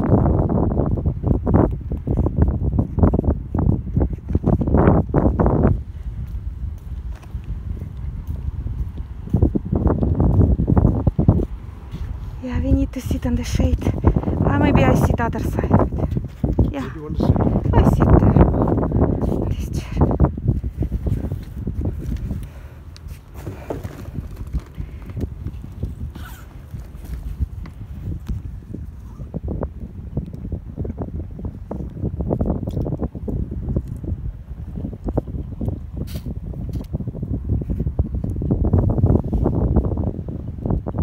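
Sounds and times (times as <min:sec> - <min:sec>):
footsteps on paved walkway: 0:00.0 - 0:41.0
wind on microphone: 0:00.0 - 0:41.0
handling clicks and rustles: 0:21.4 - 0:28.5.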